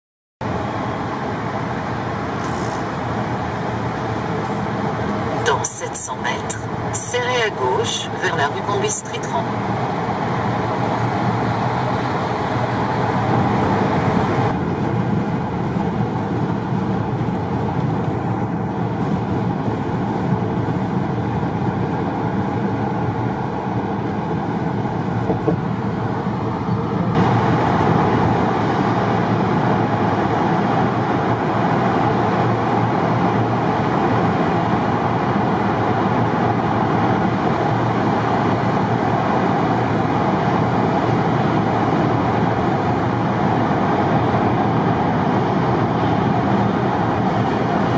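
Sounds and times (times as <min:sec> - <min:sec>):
car road and tyre noise: 0:00.4 - 0:47.9.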